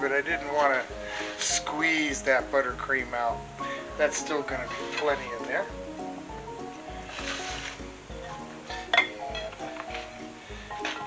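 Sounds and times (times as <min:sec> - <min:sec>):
upbeat background music: 0:00.0 - 0:11.0
plate clinking: 0:07.2 - 0:10.2.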